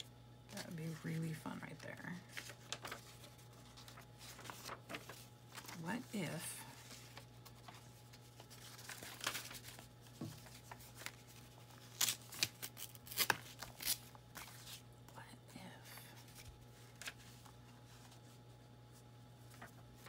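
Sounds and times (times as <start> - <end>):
paper rustling and sliding: 2.3 - 6.1, 6.7 - 12.3, 16.2 - 20.0
paper crinkles and taps: 7.0 - 11.5.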